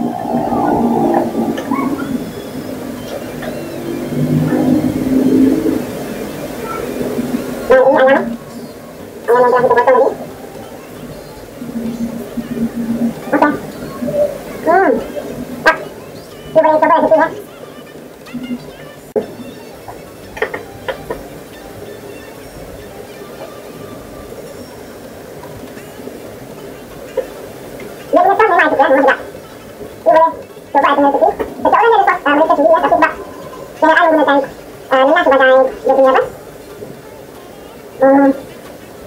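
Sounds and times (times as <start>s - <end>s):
person singing or humming: 0.0s - 24.7s.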